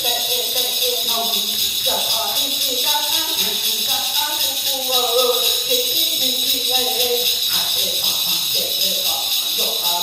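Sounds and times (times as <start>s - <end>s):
metal ring rattles jingling: 0.0s - 10.0s
person chanting: 0.0s - 10.0s.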